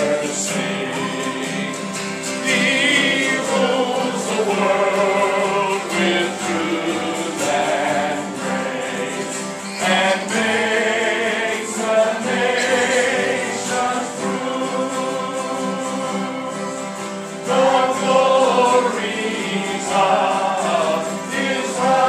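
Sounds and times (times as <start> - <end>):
group of people singing: 0.0 - 22.0
strummed acoustic guitars: 0.0 - 22.0.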